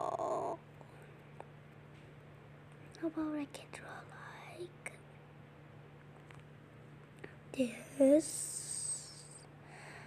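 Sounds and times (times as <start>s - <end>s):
steady low hum: 0.0s - 10.0s
faint whispering: 3.0s - 5.0s, 7.6s - 9.5s.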